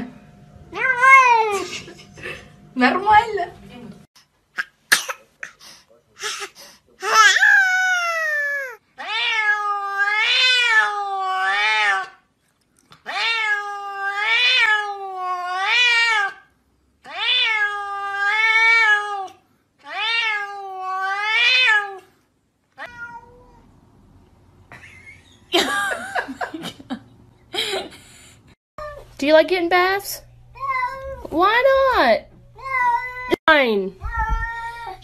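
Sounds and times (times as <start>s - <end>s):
cats meowing: 7.0s - 12.2s, 13.0s - 16.4s, 17.0s - 22.1s, 22.8s - 23.7s, 30.5s - 31.3s, 32.6s - 33.4s, 34.0s - 35.0s.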